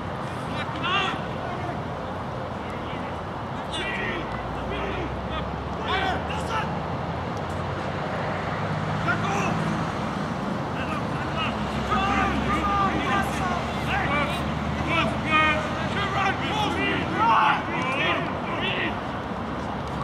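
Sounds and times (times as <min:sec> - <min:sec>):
players shouting: 0:00.0 - 0:06.8, 0:09.0 - 0:09.9, 0:10.6 - 0:20.0.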